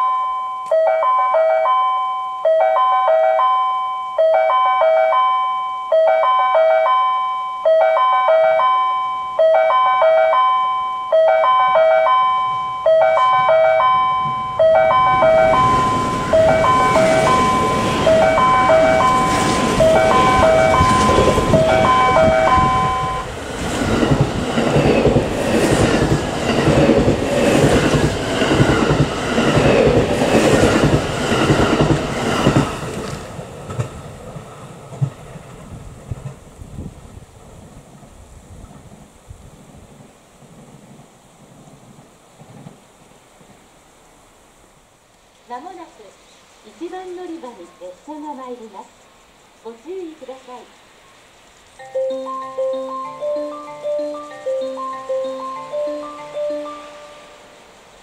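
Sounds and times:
platform warning chime melody: 0.0 - 23.3, 51.8 - 57.6
train rushing past: 7.8 - 43.8, 51.8 - 58.0.

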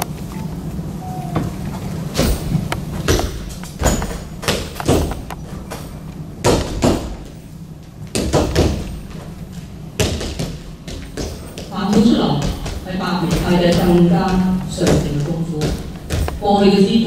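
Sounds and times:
feet stamping on a padded mat: 2.2 - 5.3, 6.4 - 7.4, 8.1 - 16.9.

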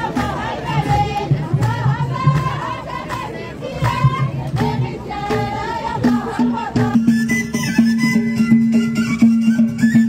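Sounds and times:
frame drums beating: 0.0 - 10.0.

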